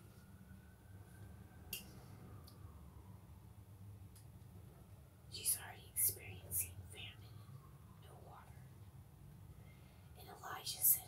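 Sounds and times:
person whispering: 5.3 - 8.6, 10.2 - 11.0.

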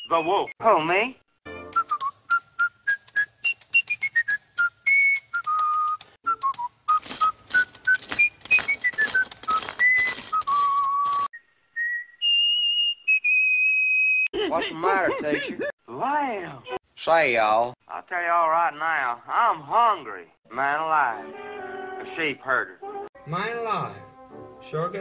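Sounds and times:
whistled tune: 0.0 - 0.6, 1.5 - 14.3.

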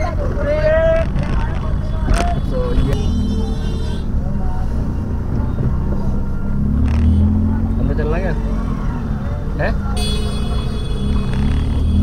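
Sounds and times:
vehicle engine and road rumble: 0.0 - 12.0.

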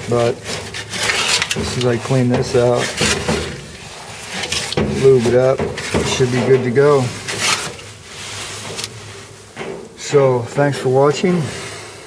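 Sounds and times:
rustling and scraping: 0.0 - 11.8.

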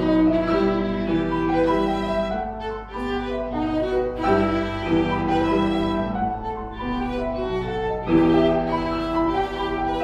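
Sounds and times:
violin playing classical piece: 0.0 - 10.0.

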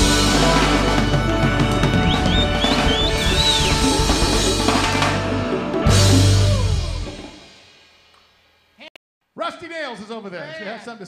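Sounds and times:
live band playing: 0.0 - 7.8.

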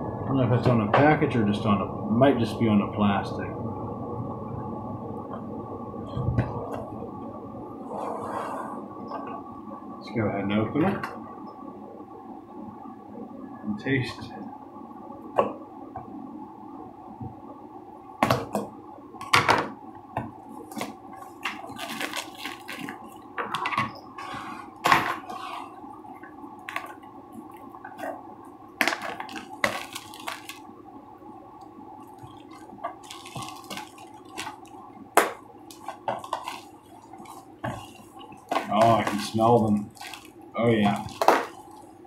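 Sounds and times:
low hum: 0.0 - 19.2
cellophane crinkling: 20.6 - 23.2, 28.8 - 30.7, 32.0 - 42.0.

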